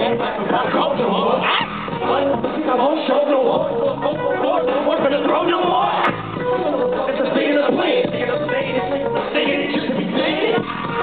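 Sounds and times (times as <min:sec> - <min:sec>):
loud live hip-hop music: 0:00.0 - 0:11.0
person rapping over a beat: 0:00.0 - 0:11.0.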